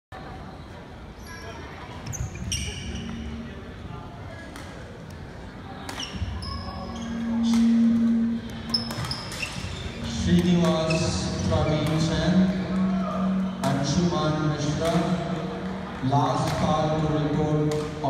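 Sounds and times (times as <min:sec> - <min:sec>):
shoes squeaking on hardwood court: 0:01.2 - 0:03.4, 0:05.9 - 0:07.9, 0:08.5 - 0:12.2
low steady hum: 0:06.7 - 0:09.0.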